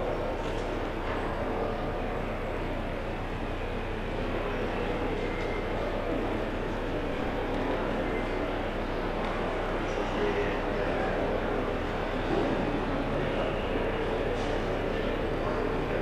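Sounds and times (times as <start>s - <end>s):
low constant hum: 0.0s - 16.0s.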